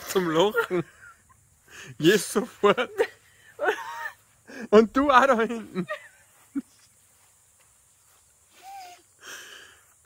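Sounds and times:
person's stifled laughter: 0:02.6 - 0:04.2.

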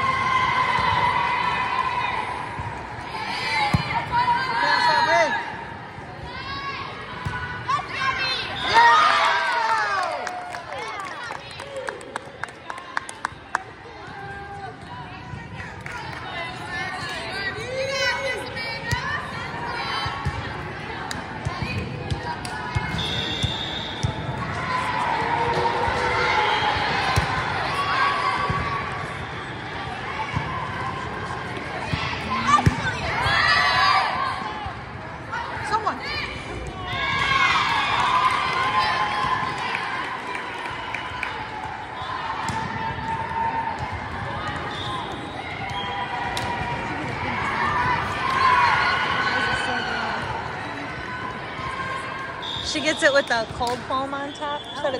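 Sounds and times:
crowd noise: 0:00.0 - 0:54.9
spectators chattering: 0:10.7 - 0:54.9
referee's whistle: 0:22.9 - 0:24.2, 0:44.6 - 0:46.1, 0:52.4 - 0:54.9
sharp volleyball hits: 0:27.0 - 0:27.5, 0:31.6 - 0:33.3, 0:42.4 - 0:42.9
players' voices echoing: 0:29.8 - 0:37.3.

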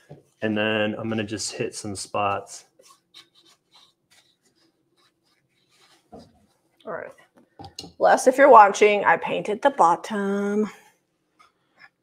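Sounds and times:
paintbrush dabbing on metal: 0:02.7 - 0:07.4.

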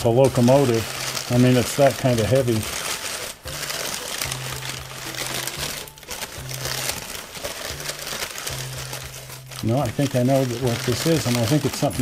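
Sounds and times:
packing paper rustling: 0:00.0 - 0:12.0.

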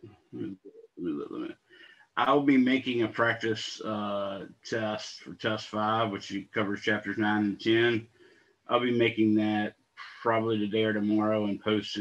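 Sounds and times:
man muttering: 0:00.0 - 0:01.5, 0:02.2 - 0:08.0, 0:08.7 - 0:12.0.

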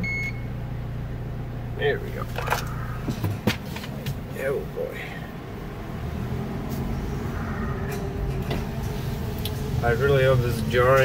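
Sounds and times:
car engine and road rumble: 0:00.0 - 0:11.0
car knocking and rattling: 0:02.1 - 0:04.8, 0:07.8 - 0:11.0.

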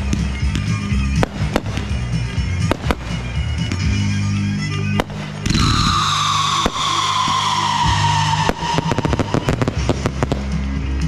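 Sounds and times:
crackling firework pops: 0:00.0 - 0:03.9, 0:05.0 - 0:10.6
firework bang: 0:05.0 - 0:10.6
firework whistle falling in pitch: 0:05.4 - 0:09.8.

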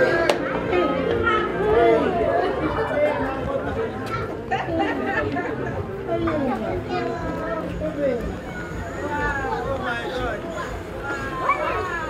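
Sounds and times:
overlapping conversation: 0:00.0 - 0:12.0.

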